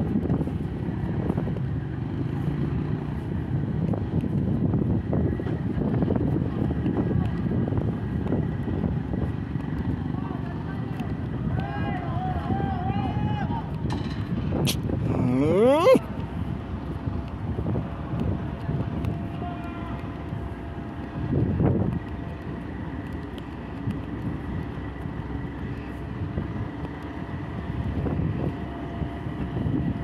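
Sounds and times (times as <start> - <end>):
crane diesel engine rumble: 0.0 - 30.0
voice calling out: 15.1 - 16.1.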